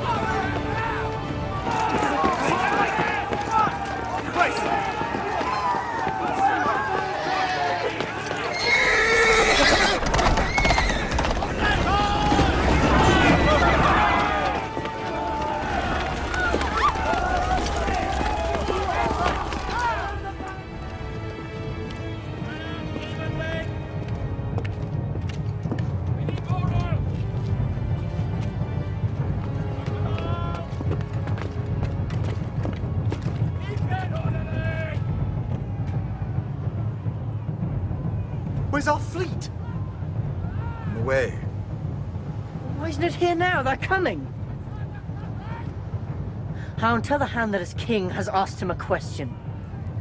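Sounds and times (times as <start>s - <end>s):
soldiers' footsteps: 0.0s - 40.7s
hooves clattering: 0.0s - 50.0s
horses whinnying: 7.3s - 19.0s.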